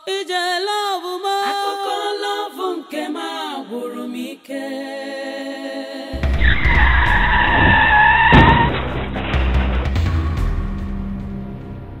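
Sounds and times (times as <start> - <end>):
car tyres screeching: 6.2 - 10.0
thump: 6.2 - 10.3.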